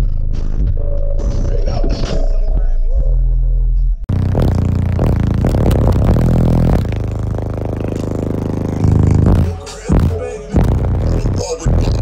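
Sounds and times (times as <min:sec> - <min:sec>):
loud bass-heavy music in car: 0:00.0 - 0:12.0.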